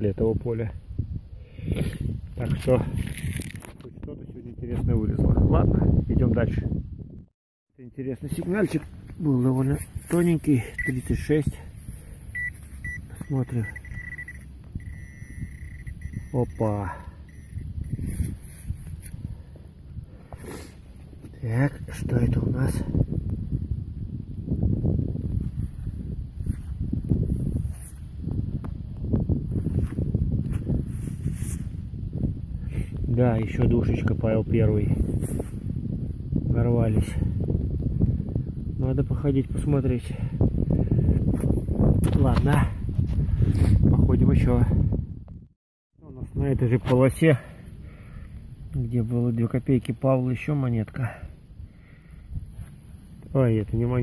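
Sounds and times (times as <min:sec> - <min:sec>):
hand rustling in soil: 0:08.4 - 0:13.6, 0:17.7 - 0:19.5, 0:29.4 - 0:31.9
gloved hand rustling soil: 0:08.5 - 0:11.1.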